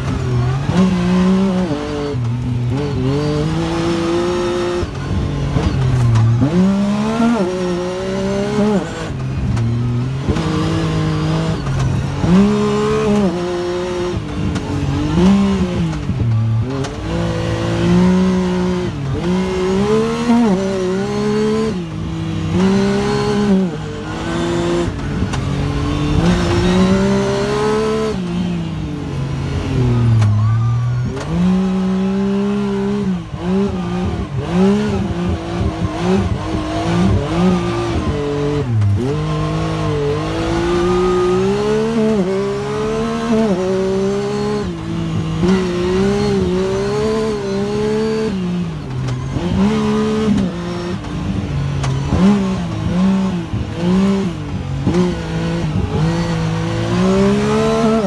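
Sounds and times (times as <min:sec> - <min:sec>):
utility vehicle engine revving: 0:00.0 - 0:58.0.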